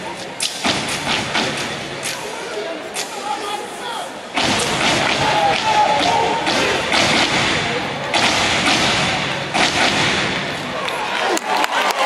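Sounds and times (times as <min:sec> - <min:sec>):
crowd voices: 0:00.0 - 0:12.0
stomps and claps in unison: 0:04.4 - 0:12.0.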